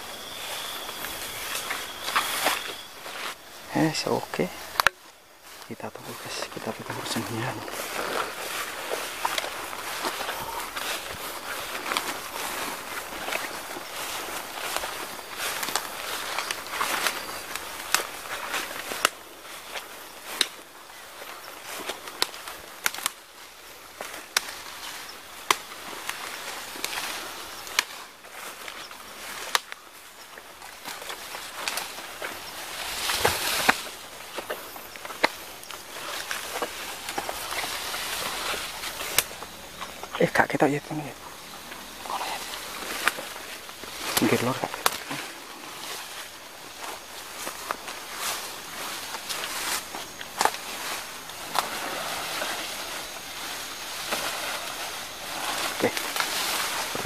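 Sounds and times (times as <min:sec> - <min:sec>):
footsteps through undergrowth: 0:00.0 - 0:57.0
twigs crackling underfoot: 0:00.0 - 0:57.0
foliage swishing: 0:31.3 - 0:34.4.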